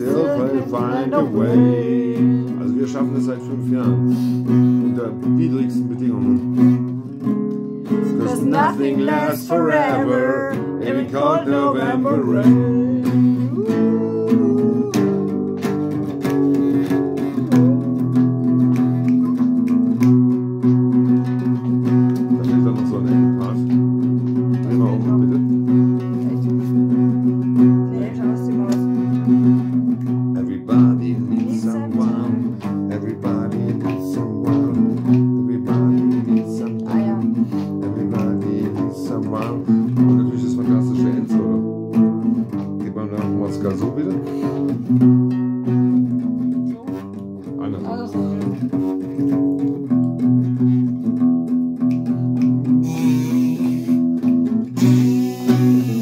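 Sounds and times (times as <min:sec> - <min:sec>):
acoustic guitar strumming: 0:00.0 - 0:56.0.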